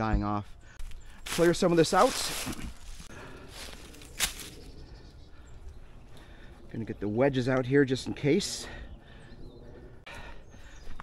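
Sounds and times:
dry leaves crackling: 0:00.8 - 0:04.8
faint rustling in leaves: 0:00.8 - 0:05.8.

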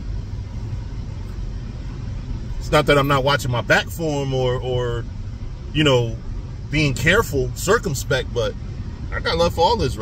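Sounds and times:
car engine rumble: 0:00.0 - 0:10.0
road noise inside car: 0:00.0 - 0:10.0.

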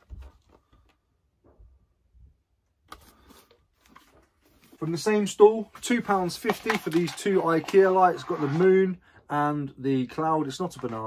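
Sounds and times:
plastic player being handled: 0:02.9 - 0:08.8.

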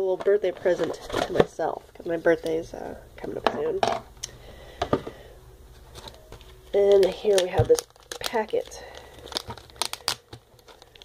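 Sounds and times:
packet crinkling: 0:05.9 - 0:11.0.

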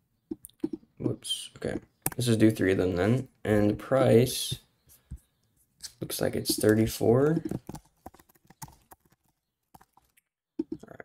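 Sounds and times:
keyboard keystrokes typing: 0:06.5 - 0:10.8.

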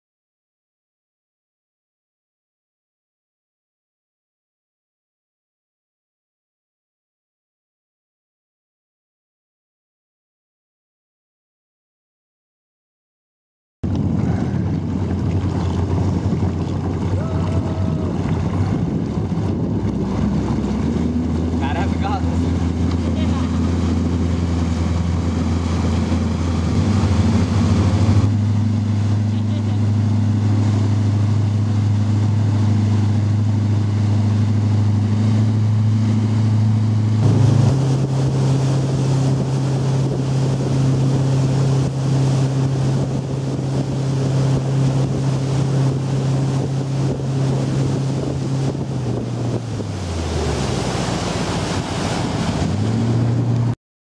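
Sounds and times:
motorboat engine running: 0:13.8 - 0:53.8
water rushing past hull: 0:13.8 - 0:53.8
wind on microphone: 0:13.8 - 0:53.8.

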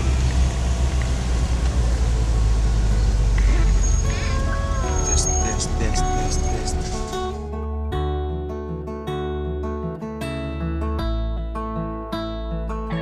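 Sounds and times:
low rumble of car interior: 0:00.0 - 0:07.4.

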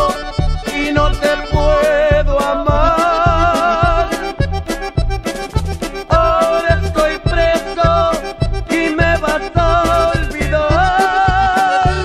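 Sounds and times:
accordion melody: 0:00.0 - 0:12.0
bass and drum beat: 0:00.0 - 0:12.0.

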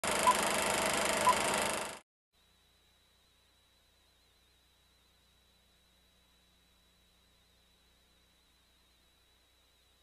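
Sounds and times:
film projector crackling and hissing: 0:00.0 - 0:02.0.

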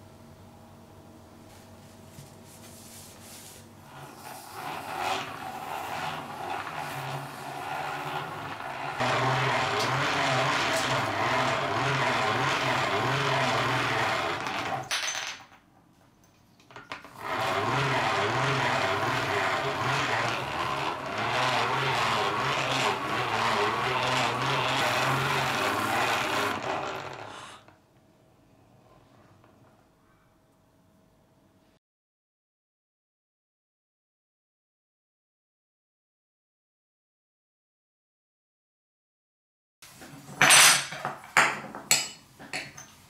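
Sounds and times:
metal rubbed against buffing wheel: 0:03.3 - 0:14.8, 0:17.2 - 0:27.6
hand-cranked grinder whirring: 0:03.8 - 0:14.9, 0:17.0 - 0:27.7.

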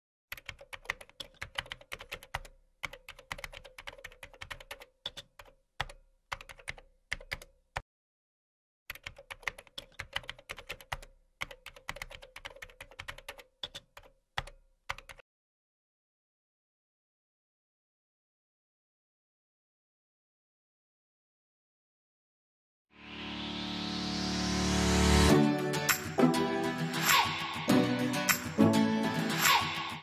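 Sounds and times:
fast keyboard typing: 0:00.3 - 0:07.8, 0:08.9 - 0:15.2.

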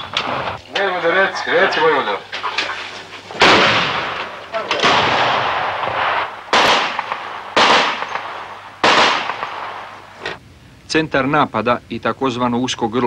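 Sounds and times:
heavy weapon shots echoing: 0:03.4 - 0:10.3.

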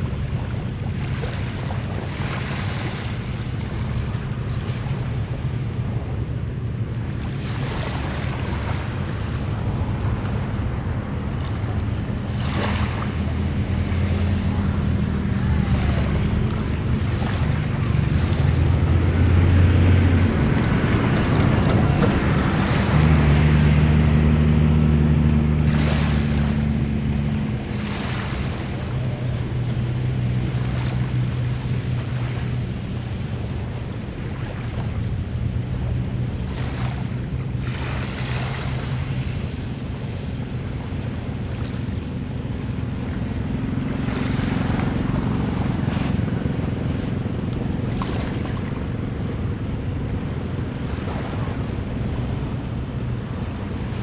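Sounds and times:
boat engine drone: 0:00.0 - 0:54.0
small waves washing in: 0:00.0 - 0:54.0.

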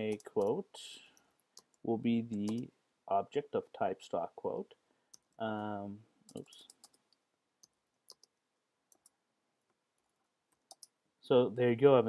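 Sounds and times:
computer keyboard keystrokes: 0:10.6 - 0:10.9.

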